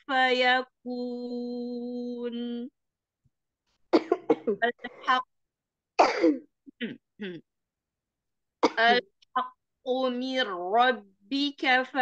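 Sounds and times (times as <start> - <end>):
woman clearing her throat: 6.0 - 7.4.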